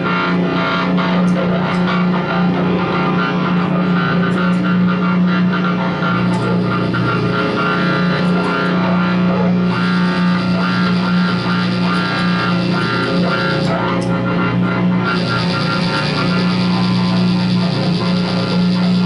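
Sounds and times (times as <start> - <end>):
loud low guitar drone note: 0.0 - 19.0
lower drone note: 0.0 - 19.0
processed noisy upper textures: 0.0 - 19.0.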